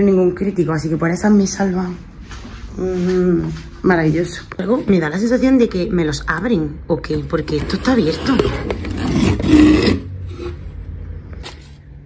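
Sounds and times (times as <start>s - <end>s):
cardboard cartons rubbing and sliding: 7.2s - 10.7s.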